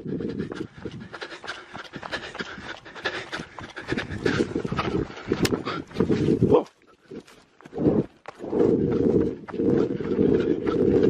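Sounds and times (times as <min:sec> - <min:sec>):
heavy panting breaths: 0:00.0 - 0:11.0.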